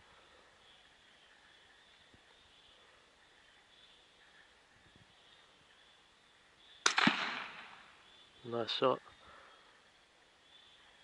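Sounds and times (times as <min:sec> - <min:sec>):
faint high hiss: 0:00.0 - 0:11.0
rifle shot: 0:06.8 - 0:07.9.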